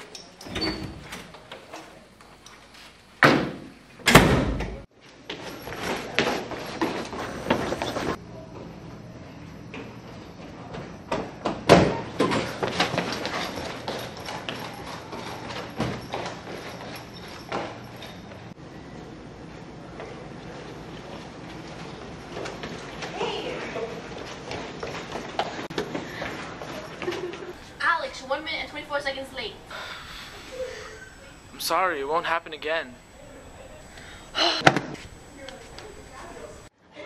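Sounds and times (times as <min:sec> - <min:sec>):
low hum and hiss: 0:26.0 - 0:37.0.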